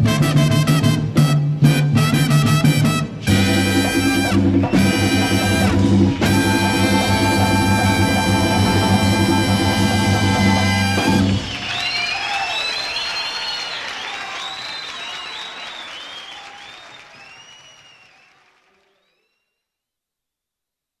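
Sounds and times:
audience applause: 10.0s - 19.3s
high whistles from audience: 10.7s - 19.7s.

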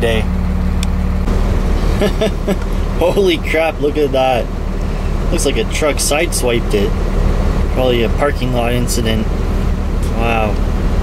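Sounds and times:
diesel engine drone from cab: 0.0s - 11.0s.

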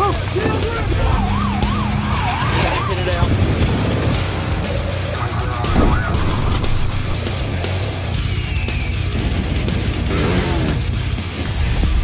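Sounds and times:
siren wailing: 0.8s - 3.4s, 4.7s - 7.2s
music with low bass: 3.2s - 12.0s.

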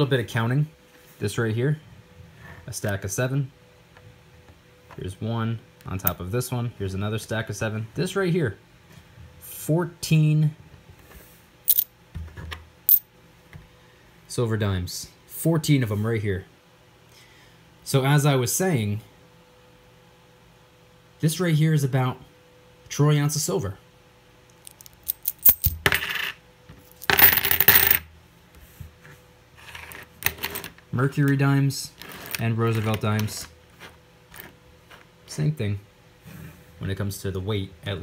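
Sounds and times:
coins clinking: 11.7s - 11.9s, 24.7s - 28.0s.

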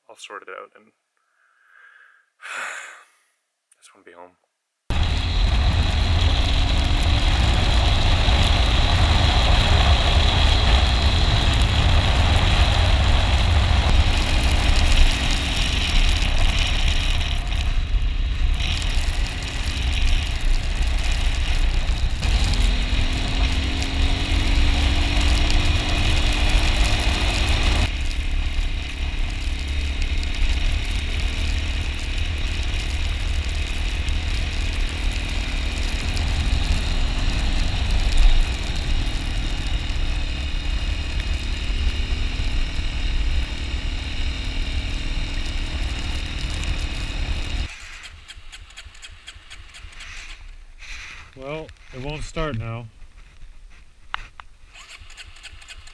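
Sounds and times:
motorcycle engine running: 4.9s - 50.6s.

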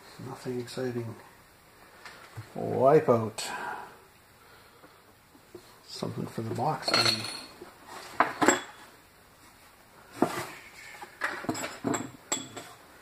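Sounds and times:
metal hardware clinking in box: 6.8s - 7.5s.

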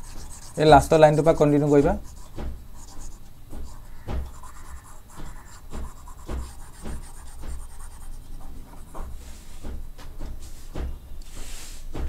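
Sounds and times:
stylus scratching and tapping tablet: 0.0s - 9.8s.

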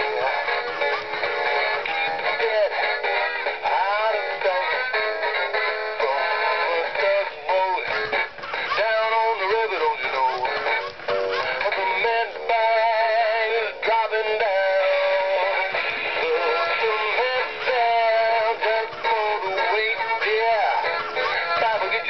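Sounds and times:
man singing through tinny speaker: 0.0s - 1.2s, 1.8s - 22.0s.

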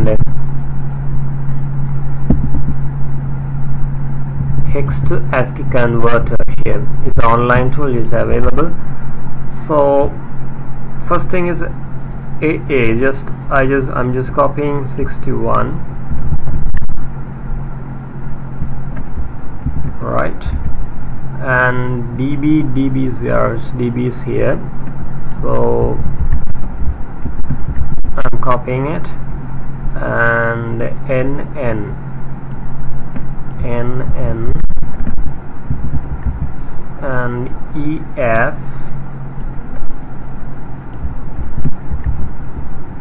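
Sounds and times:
dull rumble: 0.0s - 43.0s
steady low hum: 0.0s - 43.0s.

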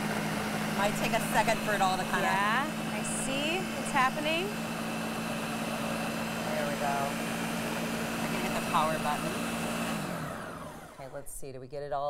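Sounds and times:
blender motor hum: 0.0s - 11.1s
blender whirring: 0.0s - 11.2s.

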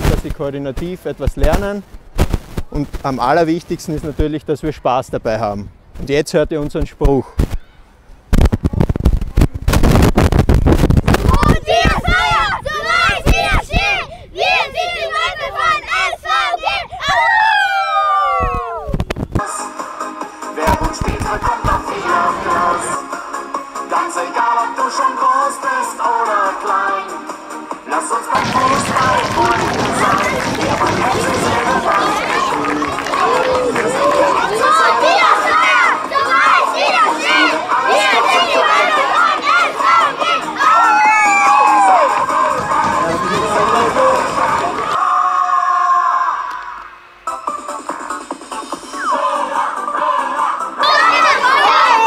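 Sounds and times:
children shouting and cheering: 11.1s - 19.0s, 28.4s - 47.0s, 48.8s - 52.0s
music: 19.4s - 45.1s, 46.6s - 52.0s
boys chanting in unison: 20.6s - 23.0s, 27.9s - 40.9s, 42.0s - 46.4s, 49.1s - 52.0s.

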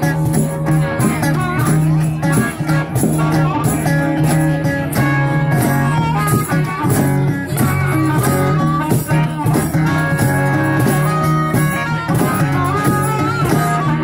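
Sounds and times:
acoustic guitar strumming: 0.0s - 14.0s
electric guitar: 0.0s - 14.0s
harmonica bending notes: 0.0s - 14.0s.

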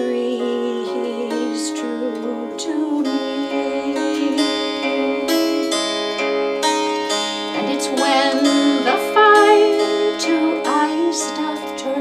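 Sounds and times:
woman singing folk song: 0.0s - 6.3s, 7.1s - 12.0s
mountain dulcimer strummed: 0.0s - 12.0s.

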